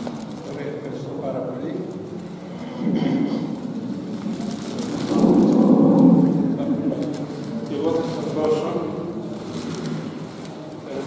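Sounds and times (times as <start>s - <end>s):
crowd murmur: 1.0s - 11.0s.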